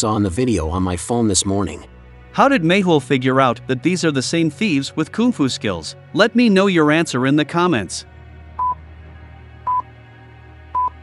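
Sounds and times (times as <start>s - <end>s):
timer beeping: 10.8s - 11.0s.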